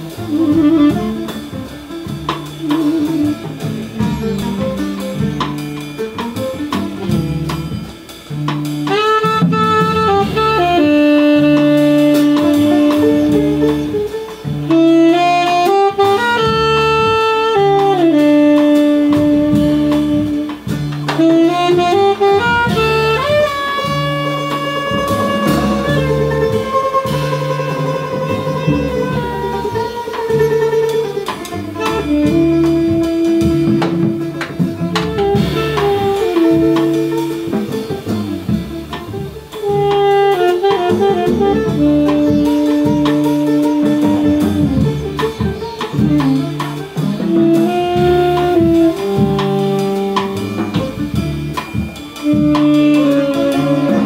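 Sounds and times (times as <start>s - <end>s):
double bass: 0.0s - 54.0s
drum kit with cymbals: 0.0s - 54.0s
tenor saxophone melody: 0.0s - 54.0s.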